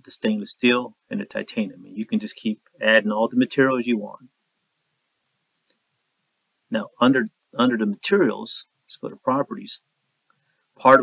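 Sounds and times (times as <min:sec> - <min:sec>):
man speaking: 0:00.0 - 0:04.3, 0:06.7 - 0:09.9, 0:10.8 - 0:11.0.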